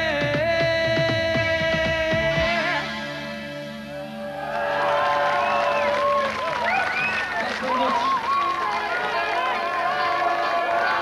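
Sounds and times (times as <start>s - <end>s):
audience cheering and whooping: 3.9s - 11.0s.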